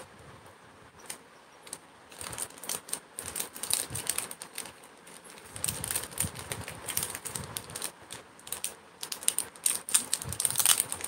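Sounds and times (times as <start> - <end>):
small hard objects clicking: 1.1 - 11.0.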